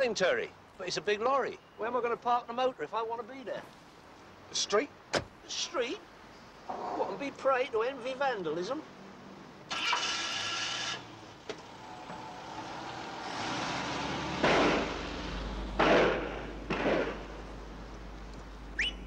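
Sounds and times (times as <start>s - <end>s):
car engine starting and revving: 9.7s - 17.7s.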